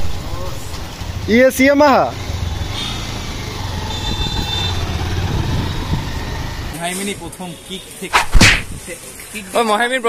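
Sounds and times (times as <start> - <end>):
street noise: 0.0 - 10.0
motorcycle engine droning: 1.0 - 6.8.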